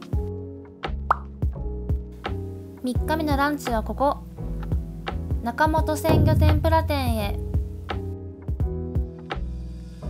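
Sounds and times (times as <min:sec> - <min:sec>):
light background music with beat: 0:00.0 - 0:10.0
person speaking: 0:06.0 - 0:07.4.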